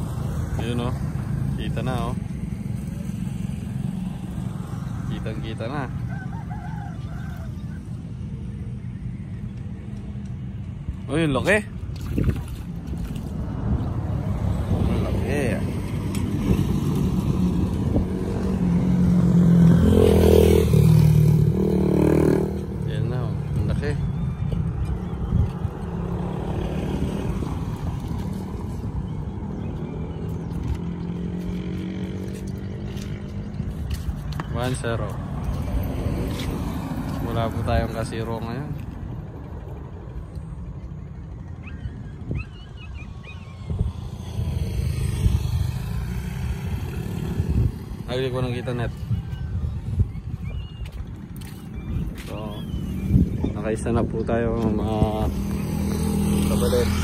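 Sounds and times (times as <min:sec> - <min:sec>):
motorcycle traffic rumble: 0:00.0 - 0:57.0
vehicle passing by: 0:12.8 - 0:57.0.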